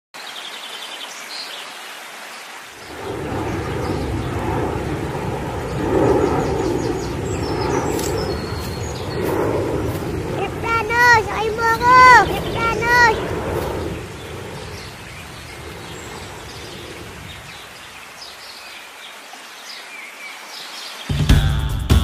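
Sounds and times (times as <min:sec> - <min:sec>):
low rumbling noise: 0:02.8 - 0:17.9.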